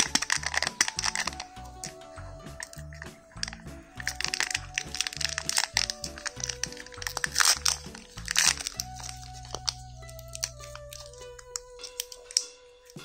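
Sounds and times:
background music: 0.0 - 13.0
plastic wrapper crinkling: 0.0 - 13.0.

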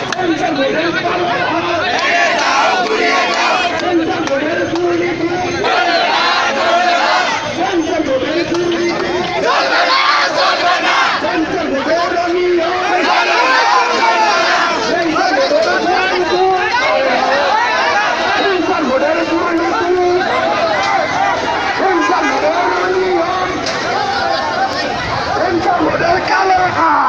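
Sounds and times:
crowd shouting: 0.0 - 27.0.

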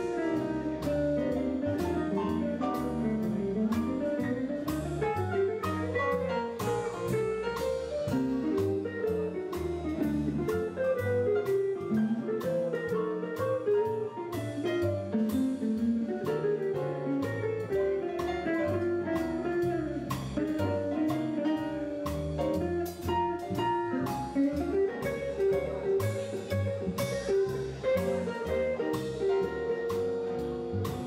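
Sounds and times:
drums on cymbals: 0.0 - 31.0
guitar line: 0.0 - 31.0
piano: 0.0 - 31.0
upright bass walking: 0.0 - 31.0.

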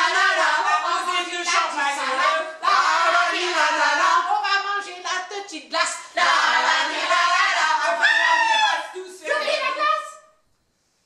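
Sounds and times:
woman singing unaccompanied: 0.0 - 8.0.

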